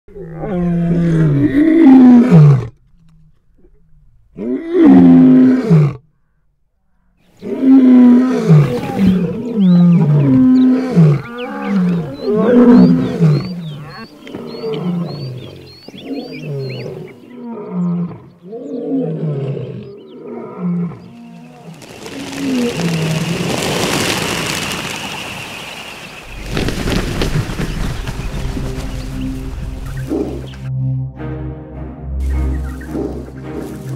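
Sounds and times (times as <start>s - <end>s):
lion roaring: 0.1s - 6.0s, 7.4s - 21.7s.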